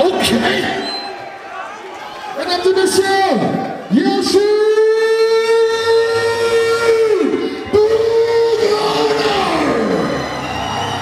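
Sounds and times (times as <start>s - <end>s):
man announcing over public address: 0.0s - 1.1s, 2.3s - 10.3s.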